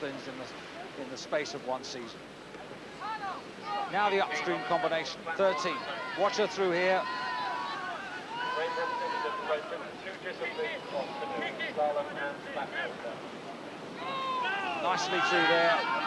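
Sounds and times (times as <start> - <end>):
whitewater rushing: 0.0 - 16.0
spectators shouting encouragement: 3.0 - 11.8, 13.9 - 16.0.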